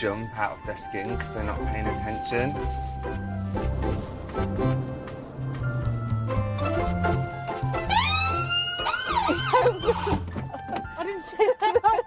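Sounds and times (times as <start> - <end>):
background music: 0.0 - 12.0
ambulance siren wailing and yelping: 7.7 - 10.2.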